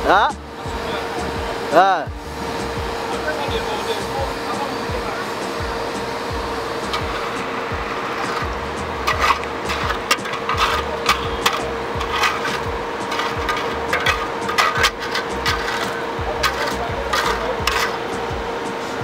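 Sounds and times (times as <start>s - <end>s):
background music with a beat: 0.0s - 19.0s
concrete knocking and scraping: 6.4s - 18.3s.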